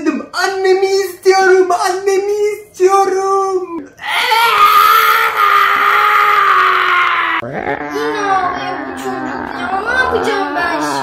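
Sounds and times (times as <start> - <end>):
man wailing like a child: 4.0 - 11.0.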